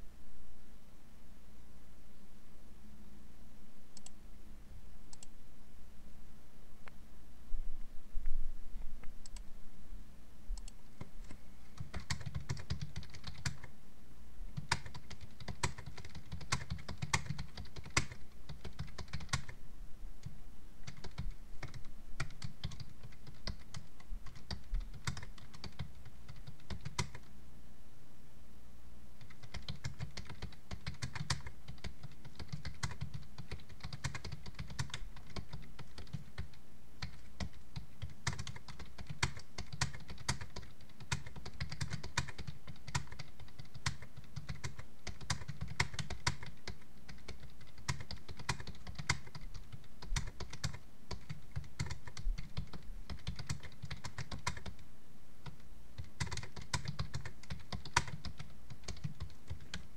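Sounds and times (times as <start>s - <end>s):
typing on computer keyboard: 10.6s - 13.7s, 14.6s - 19.6s, 20.8s - 27.3s, 29.2s - 54.8s, 55.4s - 59.9s.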